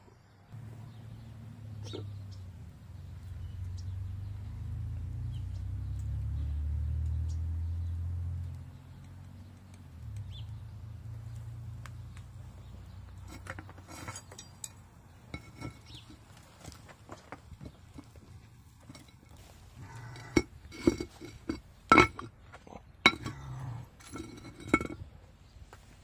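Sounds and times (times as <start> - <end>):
metal clinking and knocking: 13.2 - 22.4, 23.0 - 25.1.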